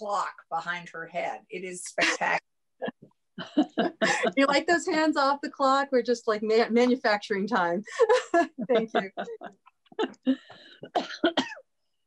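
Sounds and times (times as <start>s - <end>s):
person coughing: 10.0s - 11.6s.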